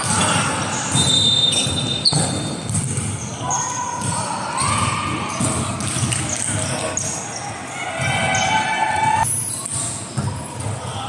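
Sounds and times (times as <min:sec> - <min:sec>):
volleyball thudding: 0:00.9 - 0:03.2.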